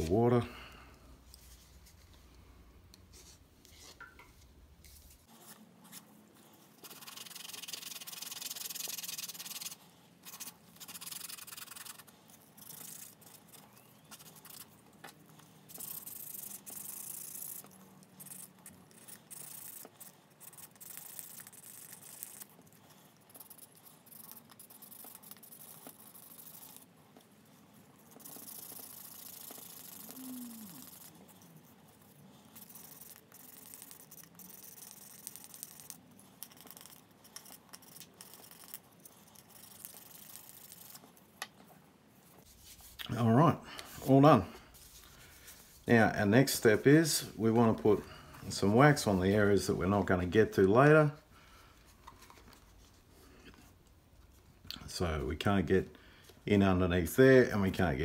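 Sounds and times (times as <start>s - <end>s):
wooden stick rubbing leather edge: 4.8s - 27.3s, 28.0s - 41.0s.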